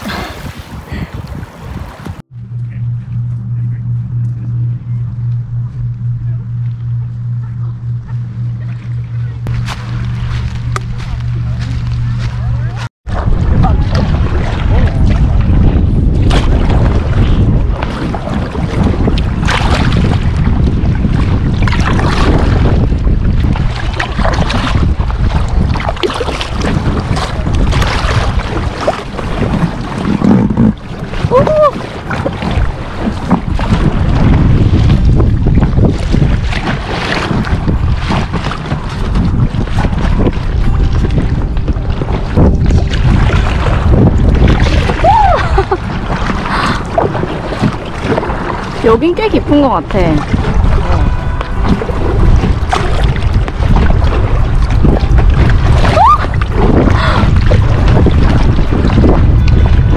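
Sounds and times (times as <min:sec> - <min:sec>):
lake water lapping: 0:00.0 - 0:02.2, 0:07.2 - 0:59.9
wind buffeting microphone: 0:00.0 - 0:59.9.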